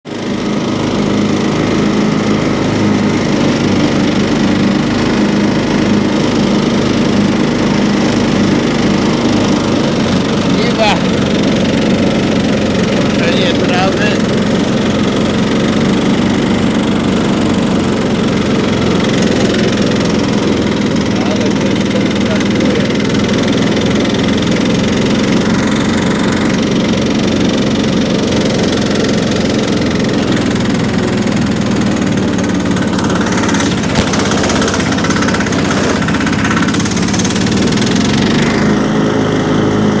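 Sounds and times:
riding lawn mower engine running: 0:00.0 - 0:40.0.

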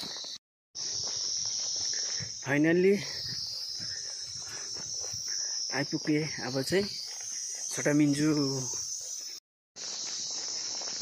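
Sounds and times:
footsteps on dirt path: 0:00.0 - 0:11.0
high-pitched insect drone: 0:00.0 - 0:11.0.

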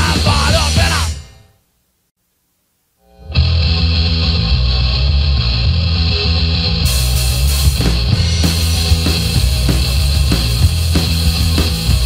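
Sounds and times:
drum kit driving beat: 0:00.0 - 0:01.4, 0:06.9 - 0:12.0
bass guitar low notes: 0:03.2 - 0:12.0.

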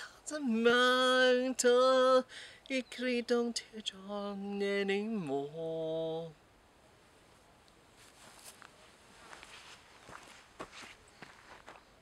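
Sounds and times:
footsteps on dirt path: 0:08.0 - 0:11.9.

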